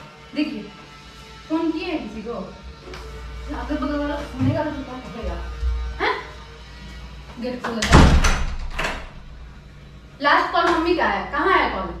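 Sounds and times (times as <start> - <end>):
background music: 0.0 - 12.0
wooden door slamming shut: 7.8 - 9.2.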